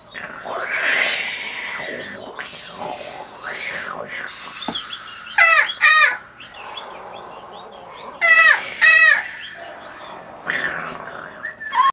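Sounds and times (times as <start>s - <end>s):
person calling: 0.2s - 11.9s.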